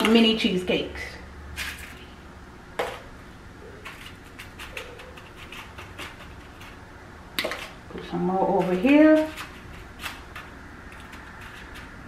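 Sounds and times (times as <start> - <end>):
spoon tapping and scraping bowl: 8.6 - 12.0.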